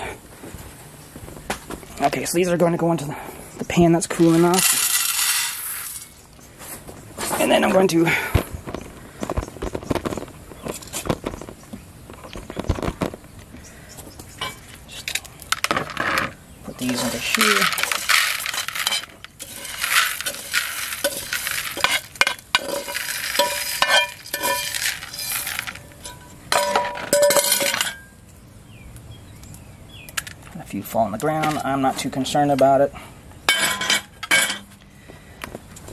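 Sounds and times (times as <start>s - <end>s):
coffee beans rattling into bowl: 4.1s - 6.2s, 15.5s - 27.9s
metal pan clinking: 17.0s - 28.1s, 33.5s - 34.7s.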